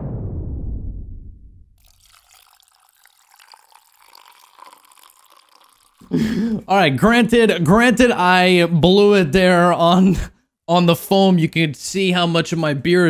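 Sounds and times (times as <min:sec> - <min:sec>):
loud low rumble: 0:00.0 - 0:01.8
beer fizzing in a glass: 0:01.8 - 0:06.2.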